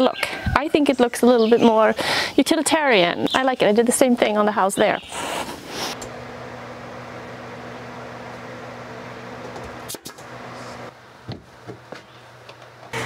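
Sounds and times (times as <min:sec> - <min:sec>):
air compressor motor hum: 0:05.2 - 0:11.6.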